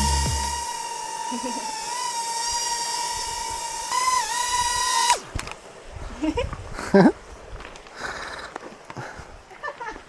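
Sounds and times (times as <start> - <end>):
drone motors whining: 0.0 - 5.6
hiss: 7.9 - 8.6.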